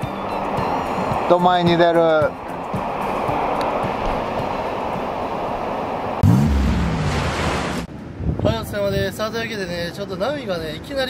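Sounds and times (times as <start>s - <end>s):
surf washing onto beach: 0.0s - 7.9s
low rumble rising and falling: 2.4s - 8.4s.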